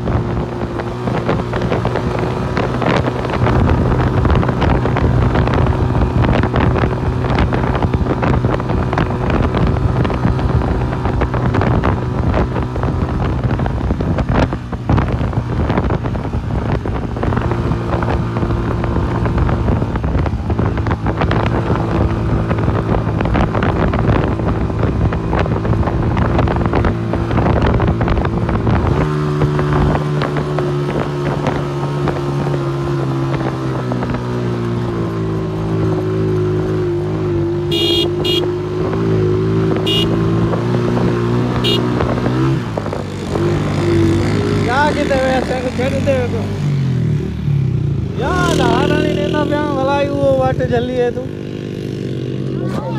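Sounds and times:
motorcycle engine running: 0:00.0 - 0:52.9
wind buffeting microphone: 0:00.0 - 0:52.9.

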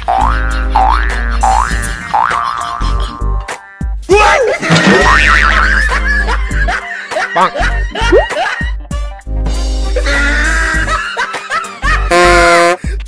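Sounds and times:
comic background music: 0:00.0 - 0:12.9.

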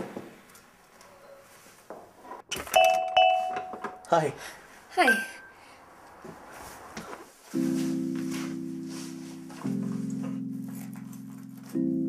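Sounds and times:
electronic doorbell chiming: 0:02.7 - 0:04.1, 0:05.0 - 0:05.7.

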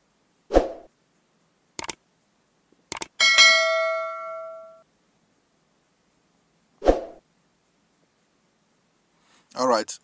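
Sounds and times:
notification bell ringing: 0:03.2 - 0:04.8.

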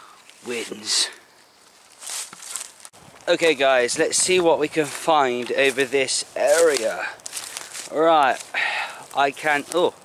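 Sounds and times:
footsteps rustling through dry leaves: 0:00.2 - 0:10.0.

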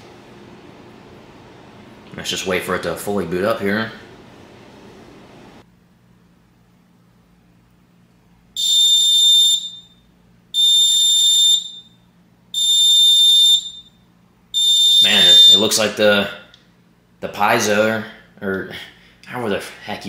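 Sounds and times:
high-pitched alarm beeps: 0:08.6 - 0:12.0, 0:12.6 - 0:14.0, 0:14.6 - 0:15.7.

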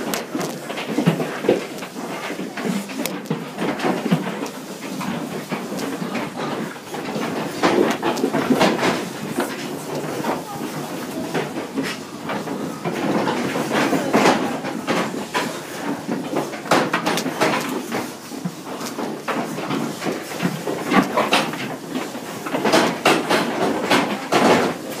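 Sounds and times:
pigs knocking against metal trailer: 0:00.0 - 0:25.0.

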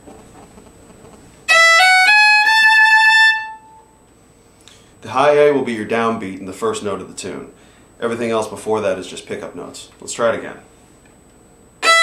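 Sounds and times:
fiddle playing rising notes: 0:01.5 - 0:03.9.

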